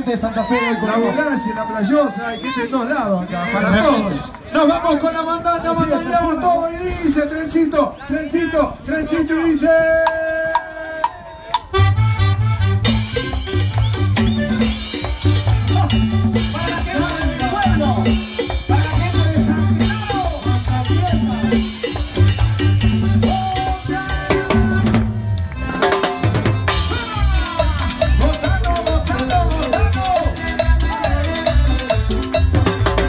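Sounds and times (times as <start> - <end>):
live band playing latin dance music: 0.0 - 8.3, 9.0 - 33.0
repeating bass line: 11.7 - 33.0
drum kit with cymbal crashes: 12.8 - 25.1, 25.7 - 33.0.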